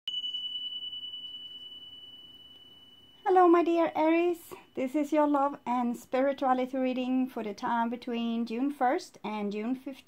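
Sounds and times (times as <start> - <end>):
high bell-like tone: 0.1 - 7.2.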